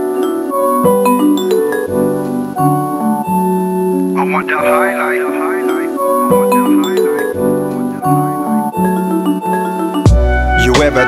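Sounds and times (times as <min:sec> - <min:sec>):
keyboard chords: 0:00.0 - 0:11.0
hip-hop beat: 0:04.1 - 0:08.5, 0:09.7 - 0:11.0.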